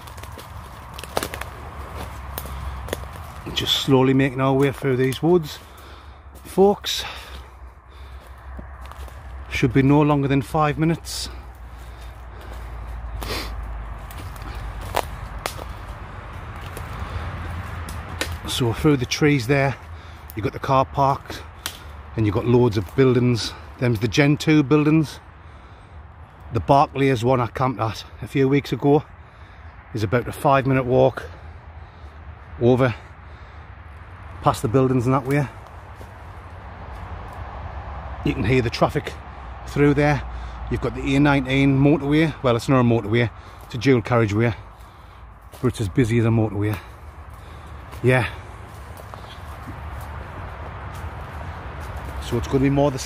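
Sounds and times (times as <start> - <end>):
footsteps on leaf litter: 0.0 - 24.1, 34.0 - 37.5, 43.0 - 53.0
twigs cracking: 0.0 - 26.5, 31.4 - 53.0
distant traffic noise: 0.0 - 53.0.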